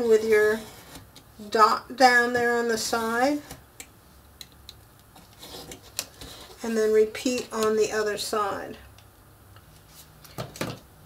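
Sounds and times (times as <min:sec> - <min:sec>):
pencil scratching along ruler: 0:00.2 - 0:01.0.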